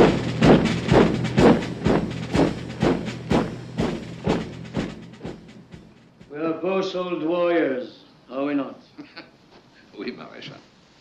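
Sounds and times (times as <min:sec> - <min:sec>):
military-style drumbeat: 0:00.0 - 0:06.7.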